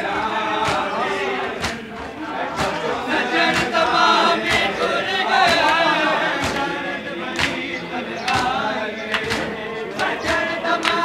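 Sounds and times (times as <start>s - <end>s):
men chanting a lament: 0.0s - 11.0s
hands slapping bare chests: 0.6s - 0.9s, 1.5s - 4.8s, 5.4s - 11.0s.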